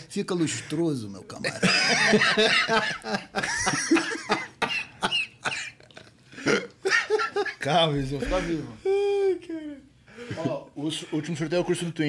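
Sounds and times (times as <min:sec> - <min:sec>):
men coughing: 0:01.5 - 0:09.0
men laughing hard: 0:01.5 - 0:09.3.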